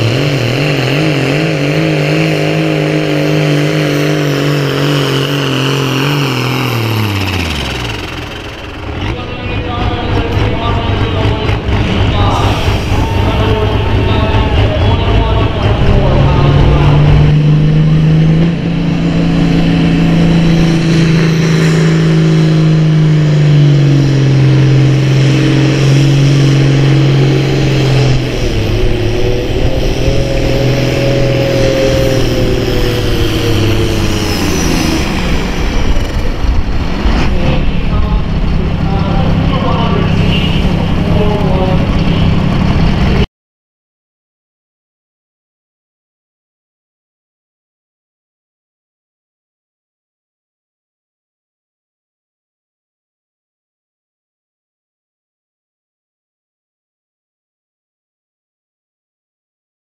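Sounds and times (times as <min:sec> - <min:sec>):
tractor engine at full throttle: 0:00.0 - 0:43.3.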